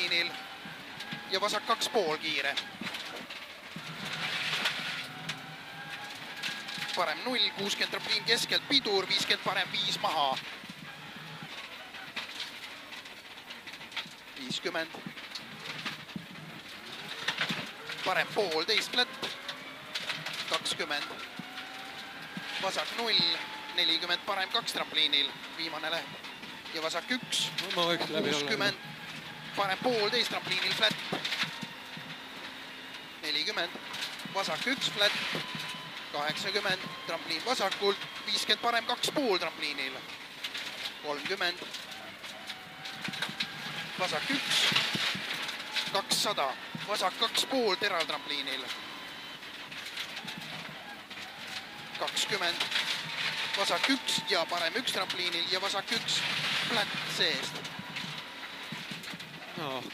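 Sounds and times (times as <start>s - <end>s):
car engine running: 0.0s - 59.9s
gravel striking car underbody: 0.0s - 59.9s
road noise: 0.0s - 59.9s.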